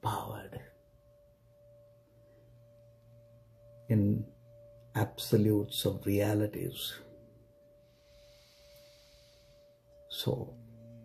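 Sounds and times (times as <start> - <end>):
faint steady held tone: 0.0 - 11.0
faint hiss: 2.1 - 11.0.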